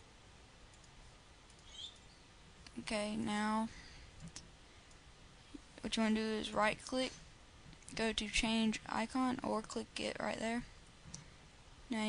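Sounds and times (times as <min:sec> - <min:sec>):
computer mouse clicks: 0:00.7 - 0:02.8, 0:04.2 - 0:05.0.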